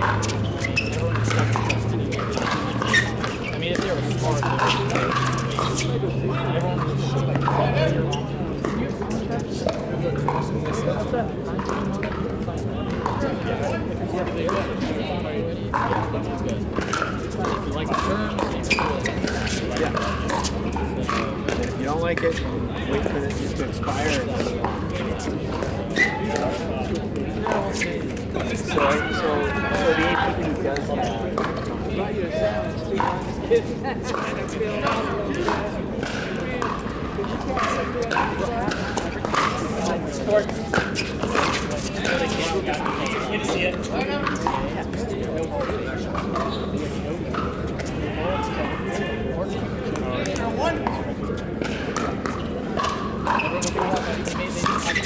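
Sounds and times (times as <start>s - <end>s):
indistinct voices: 0.0s - 55.0s
people chattering: 0.0s - 55.0s.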